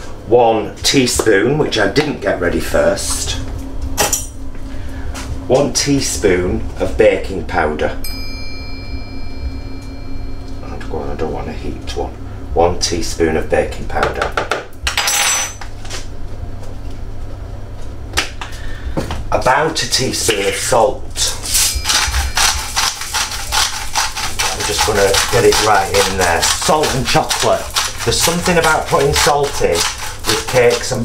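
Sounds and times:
high bell-like chime: 8.0 - 11.0, 21.6 - 22.5
salt grinder grinding: 21.2 - 31.0.

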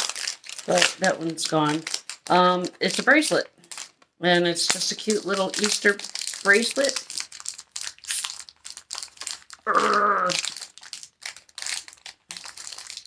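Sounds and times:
plastic bag crinkling: 0.0 - 13.0
woman murmuring: 9.7 - 10.4.

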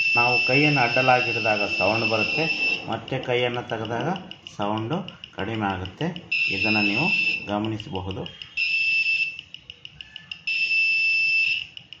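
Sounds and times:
piezo buzzer beeping: 0.0 - 9.7, 10.4 - 12.0.

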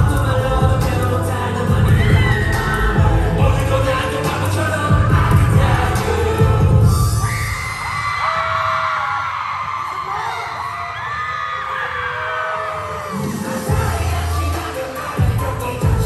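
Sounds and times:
dance-pop music with heavy bass: 0.0 - 8.0, 12.7 - 16.0
crowd screaming: 1.6 - 3.6, 6.0 - 15.2.

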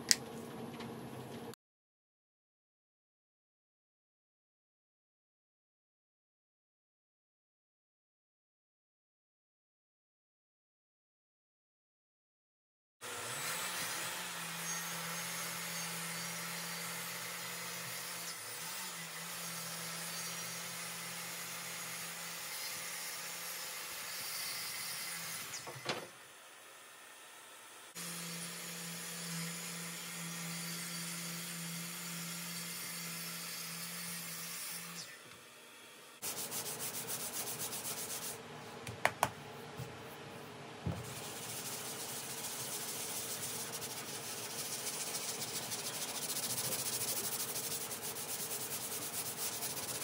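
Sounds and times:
orbital sander on wood: 28.0 - 32.0, 40.9 - 50.0
hand sanding block rubbing wood: 36.2 - 38.4, 41.0 - 50.0.

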